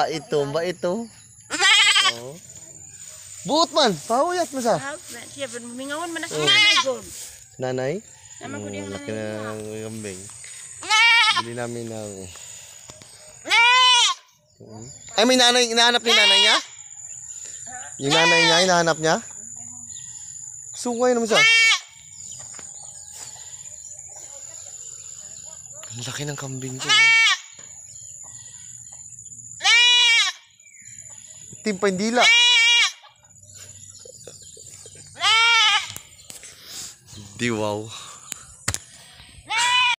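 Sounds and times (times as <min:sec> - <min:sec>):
young goat bleating: 0:01.5 - 0:02.4, 0:06.2 - 0:07.1, 0:10.8 - 0:11.6, 0:13.4 - 0:14.4, 0:16.0 - 0:16.7, 0:18.0 - 0:18.7, 0:21.3 - 0:22.0, 0:26.8 - 0:27.6, 0:29.6 - 0:30.5, 0:32.1 - 0:33.2, 0:35.1 - 0:36.1, 0:39.5 - 0:40.0.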